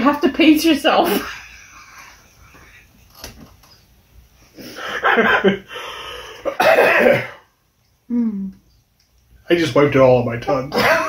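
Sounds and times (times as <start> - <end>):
person coughing harshly: 6.4 - 7.5, 10.7 - 11.0.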